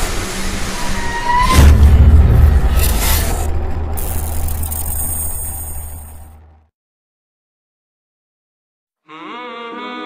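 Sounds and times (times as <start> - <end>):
deep steady rumble: 1.6 - 6.6.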